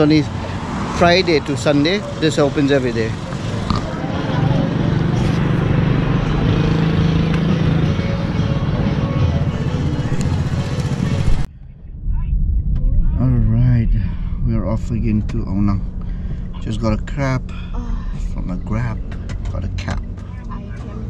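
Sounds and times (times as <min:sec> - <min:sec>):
street traffic noise: 0:00.0 - 0:13.1, 0:14.8 - 0:21.0
vehicle engine running: 0:00.0 - 0:21.0.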